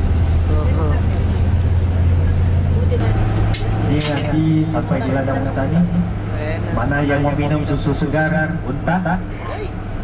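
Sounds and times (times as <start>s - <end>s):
bus engine drone: 0.0s - 10.0s
road noise: 0.0s - 10.0s.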